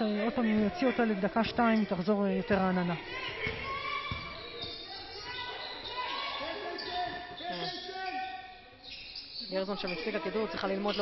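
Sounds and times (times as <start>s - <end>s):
players calling: 0.0s - 11.0s
basketball bouncing on hardwood: 3.4s - 4.4s.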